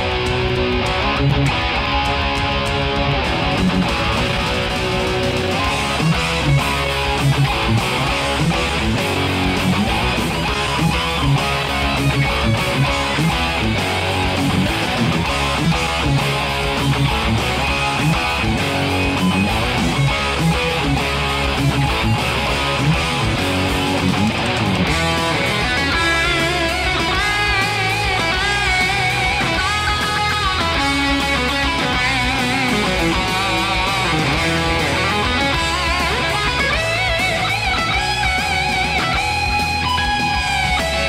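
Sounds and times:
band backing track with drums: 0.0 - 41.0
distorted electric guitar riff: 0.0 - 41.0
guitar lead line with vibrato: 0.0 - 41.0.

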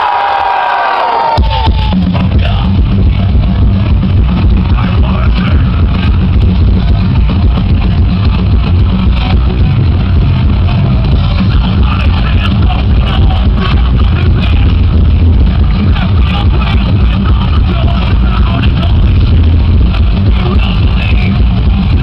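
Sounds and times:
distorted guitars: 0.0 - 22.0
drums: 0.0 - 22.0
metal band playing live: 1.2 - 22.0.

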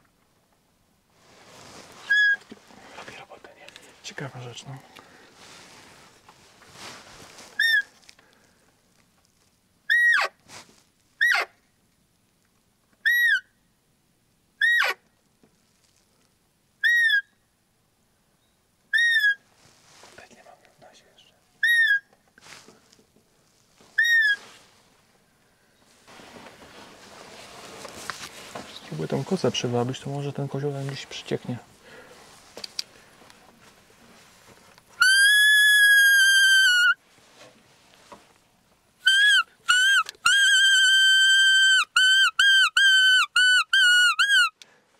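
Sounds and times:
deer call whistles: 7.6 - 7.9, 16.8 - 17.2, 35.0 - 37.0, 39.0 - 44.6.

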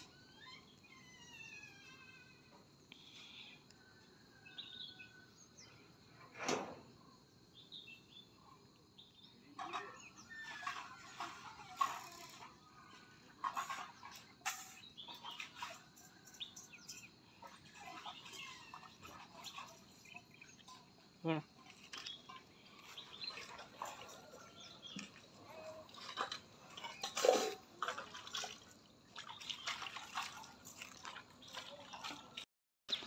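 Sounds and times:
birds chirping: 13.5 - 27.2.

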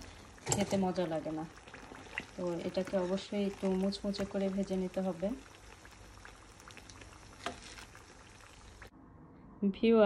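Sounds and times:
oil sizzling in a pan: 0.0 - 8.9.

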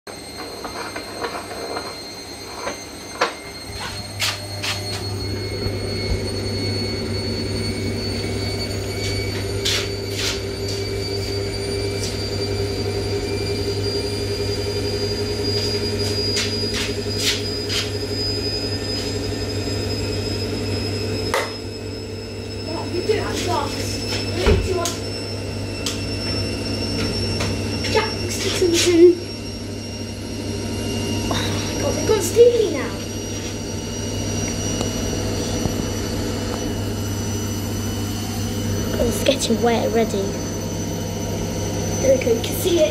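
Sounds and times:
washing machine running: 0.1 - 42.9.

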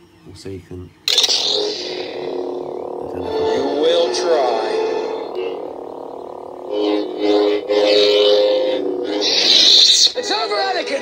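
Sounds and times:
lightsaber ignition: 1.1 - 10.2
lightsaber shutting off: 1.1 - 10.2
steady electric hum: 1.1 - 11.0.

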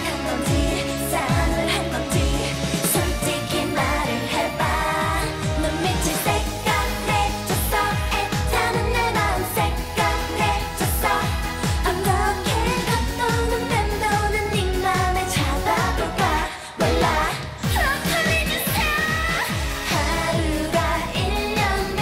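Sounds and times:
two women singing: 0.0 - 22.0.

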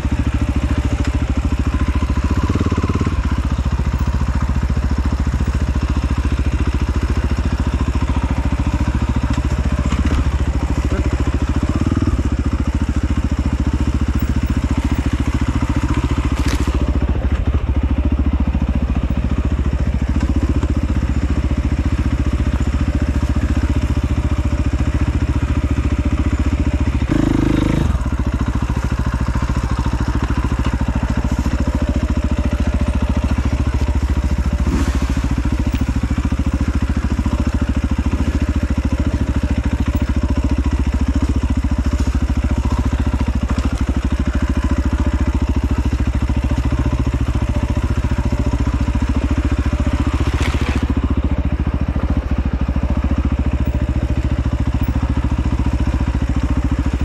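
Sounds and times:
dirt bike engine running: 0.0 - 57.0.

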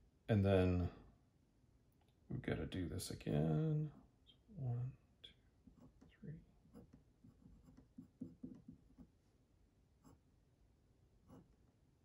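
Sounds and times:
pen drawing on paper: 6.7 - 9.1, 10.0 - 10.2, 11.2 - 11.6.

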